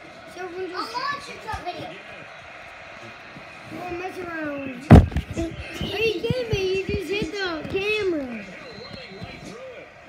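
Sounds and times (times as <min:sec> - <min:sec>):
children talking and calling out: 0:00.3 - 0:02.0, 0:05.3 - 0:08.4.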